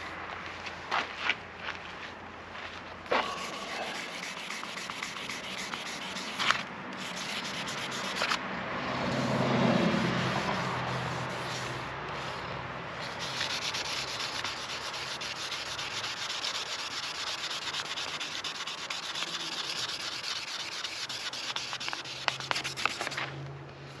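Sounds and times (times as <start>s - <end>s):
cloth rubbing on fiberglass: 3.1s - 8.4s, 9.8s - 23.3s.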